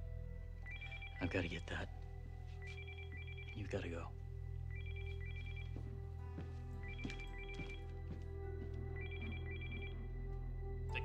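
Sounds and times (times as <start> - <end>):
soft background music: 0.0 - 11.0
telephone ringing electronic trill: 2.7 - 3.6.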